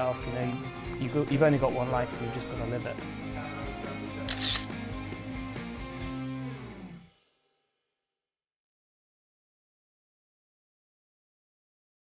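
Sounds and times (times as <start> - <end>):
guitar music: 0.0 - 7.1
camera shutter sound effect: 4.3 - 4.8.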